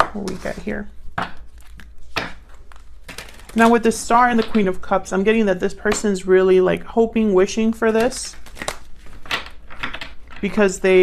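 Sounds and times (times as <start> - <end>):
cards shuffling: 0.0 - 4.7, 7.8 - 10.7
low background hum: 0.0 - 11.0.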